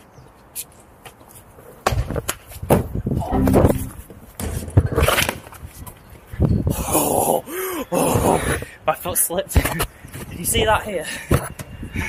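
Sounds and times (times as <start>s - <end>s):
short vocal sound: 3.2s - 3.9s.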